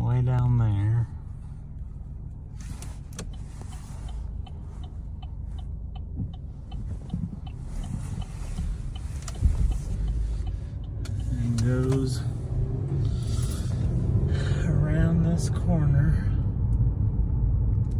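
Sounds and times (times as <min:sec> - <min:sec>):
car engine rumble and road noise: 0:00.0 - 0:17.9
faint evenly spaced ticks: 0:03.3 - 0:11.8.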